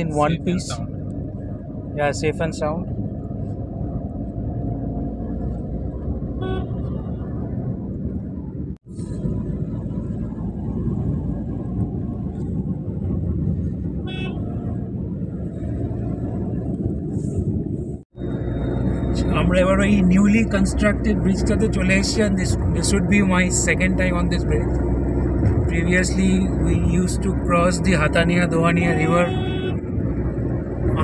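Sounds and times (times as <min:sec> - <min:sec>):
car road and engine noise: 0:00.0 - 0:31.0
car horn toots: 0:06.4 - 0:07.0, 0:14.0 - 0:14.4, 0:28.8 - 0:29.8.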